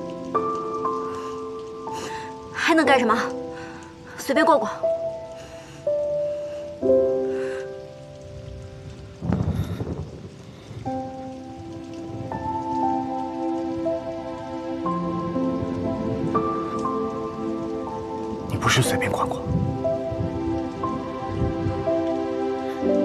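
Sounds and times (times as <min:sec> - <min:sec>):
faint steady hiss: 0:00.0 - 0:23.0
soft background score: 0:00.0 - 0:23.0
man speaking: 0:18.5 - 0:19.5.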